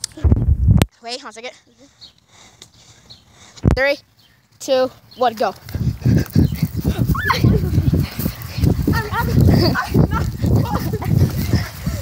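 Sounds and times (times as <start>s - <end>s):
wind on microphone: 0.2s - 0.9s, 5.6s - 12.0s
hard breathing: 1.4s - 4.5s, 5.6s - 12.0s.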